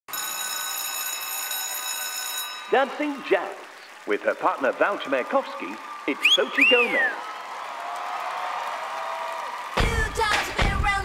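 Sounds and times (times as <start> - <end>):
electric school bell ringing: 0.1 - 3.2.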